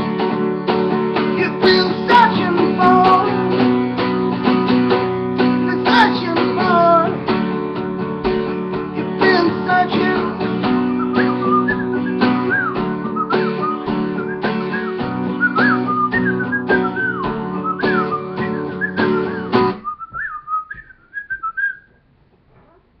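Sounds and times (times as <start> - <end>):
acoustic guitar strumming: 0.0 - 21.6
man whistling a melody: 10.0 - 21.9.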